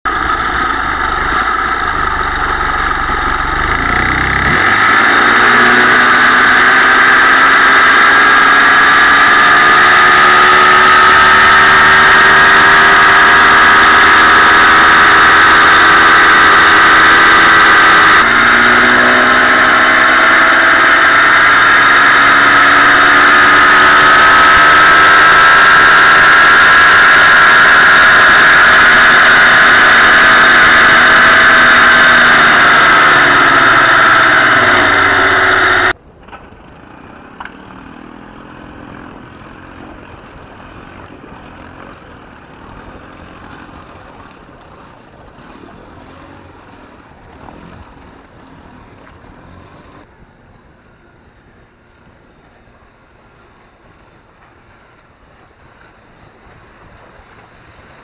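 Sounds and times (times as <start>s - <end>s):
outboard motor running fast: 0.1s - 50.2s.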